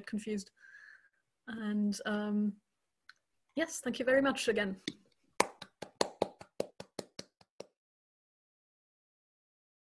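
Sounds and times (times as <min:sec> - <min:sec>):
person clapping hands: 0:05.4 - 0:07.8.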